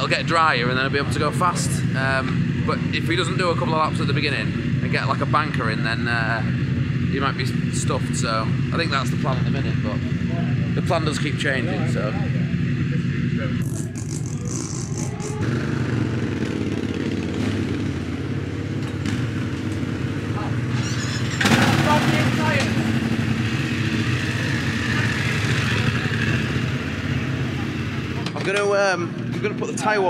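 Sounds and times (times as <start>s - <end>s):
motorcycle engine running: 0.0s - 30.0s.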